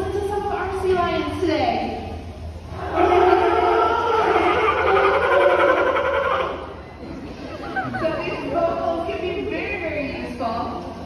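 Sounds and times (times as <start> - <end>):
sea lion calling: 2.9 - 6.9.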